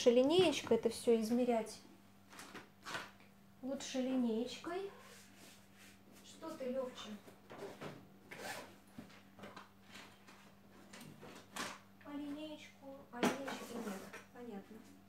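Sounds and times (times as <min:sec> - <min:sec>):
low electrical hum: 0:00.0 - 0:15.0.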